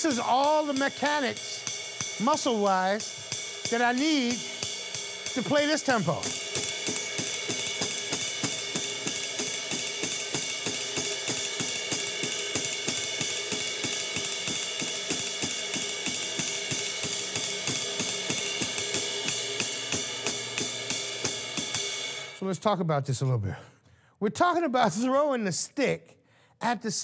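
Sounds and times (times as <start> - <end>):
ride cymbal swing pattern: 0.0 - 22.5.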